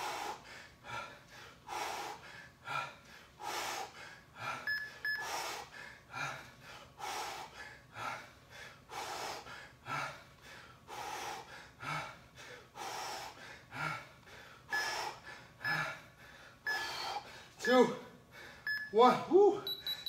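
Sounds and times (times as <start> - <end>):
man breathing hard: 0.0 - 17.6, 18.2 - 19.6.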